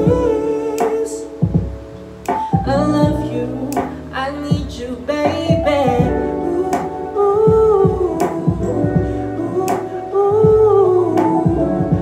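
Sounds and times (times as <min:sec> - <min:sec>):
man singing a long note: 0:00.0 - 0:01.4
backing beat with kick drum: 0:00.0 - 0:12.0.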